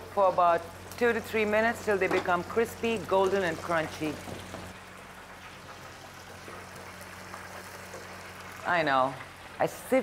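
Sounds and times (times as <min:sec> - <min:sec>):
food deep-frying in hot oil: 0:00.0 - 0:10.0.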